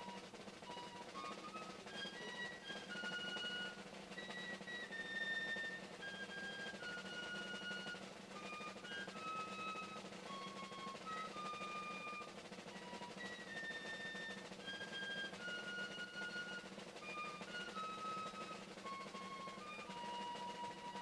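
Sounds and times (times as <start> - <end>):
faint ceremonial band: 0.0 - 21.0
snare drums: 0.0 - 21.0.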